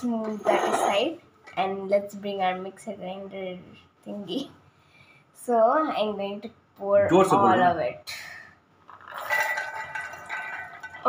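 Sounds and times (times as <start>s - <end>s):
seeds clinking into steel jar: 9.0s - 11.0s
steel jar ringing: 9.1s - 11.0s.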